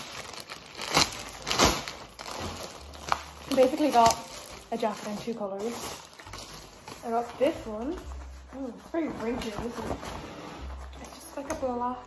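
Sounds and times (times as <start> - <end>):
sharp plastic crackles: 0.0 - 7.6
plastic bag rustling: 0.0 - 11.8.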